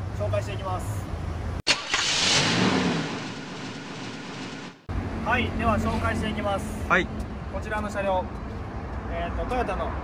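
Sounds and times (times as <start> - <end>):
loud burst of noise: 1.7 - 4.9.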